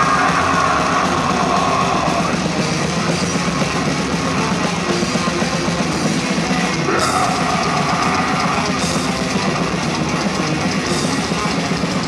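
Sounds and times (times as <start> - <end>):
death metal band playing: 0.0 - 12.0.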